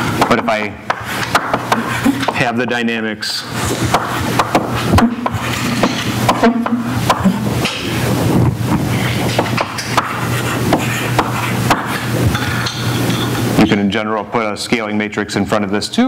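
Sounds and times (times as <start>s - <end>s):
low room hum: 0.0s - 16.0s
chalk tapping and scratching blackboard: 0.2s - 2.4s, 3.6s - 7.3s, 8.7s - 12.4s.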